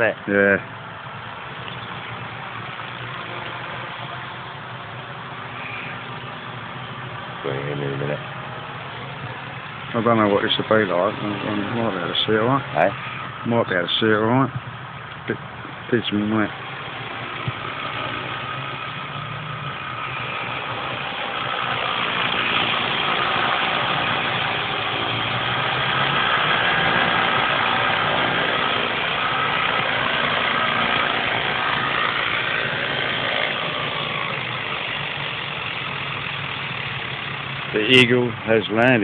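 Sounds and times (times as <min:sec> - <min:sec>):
model helicopter rotor whirring: 0:15.8 - 0:39.0.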